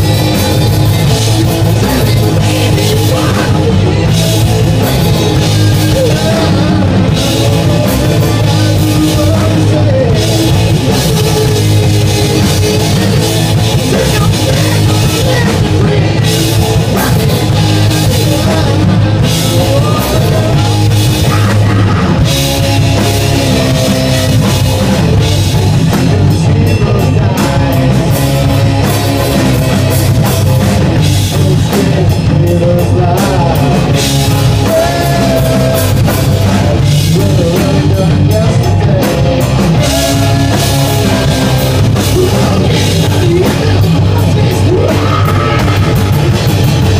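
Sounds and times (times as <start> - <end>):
bass guitar: 0.0 - 46.9
drum kit: 0.0 - 46.9
electric guitars: 0.0 - 46.9.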